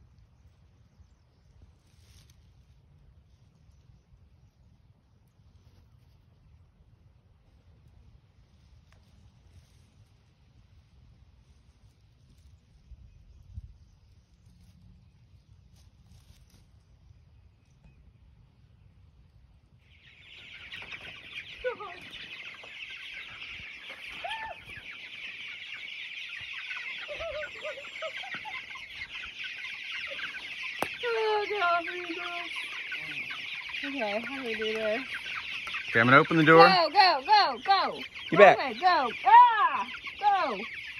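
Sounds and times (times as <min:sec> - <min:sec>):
chicks peeping: 0:19.7 - 0:40.9
lower chicken calls: 0:19.9 - 0:40.9.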